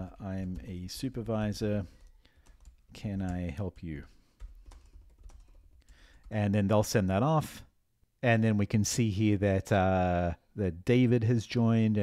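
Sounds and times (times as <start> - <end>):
faint keyboard typing: 0.1 - 6.4.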